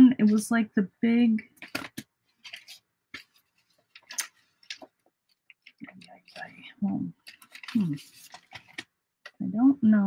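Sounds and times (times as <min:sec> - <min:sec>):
paper envelopes rustling: 0:01.6 - 0:09.0.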